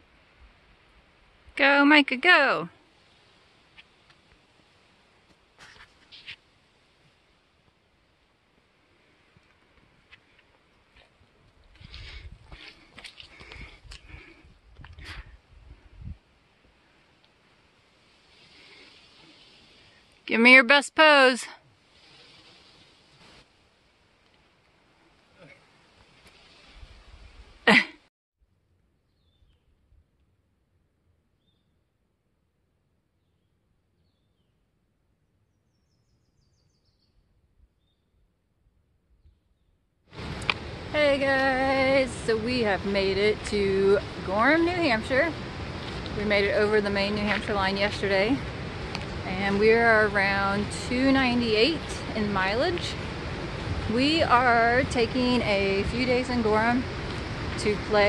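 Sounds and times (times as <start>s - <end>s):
microphone rumbles: 11.6s - 16.2s
bird chirps: 35.5s - 38.2s.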